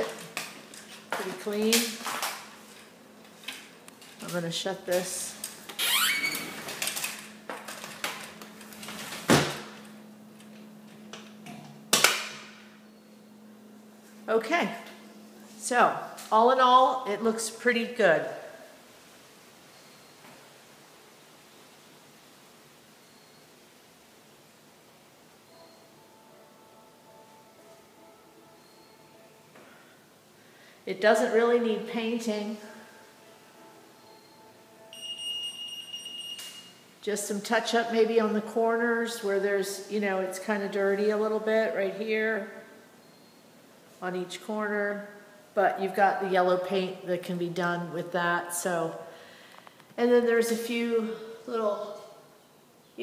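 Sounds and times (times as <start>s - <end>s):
faint steady hum: 0.0s - 53.0s
recording hiss: 12.6s - 35.0s
faint thin steady tones: 18.6s - 37.2s.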